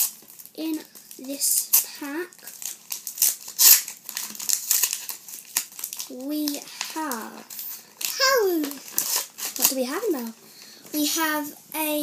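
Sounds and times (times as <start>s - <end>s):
wrapper crinkling and tearing: 0.0s - 10.7s.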